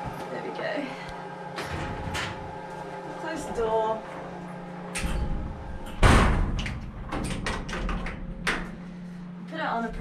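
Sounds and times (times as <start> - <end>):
metal cabinet door thud: 6.0 - 7.6.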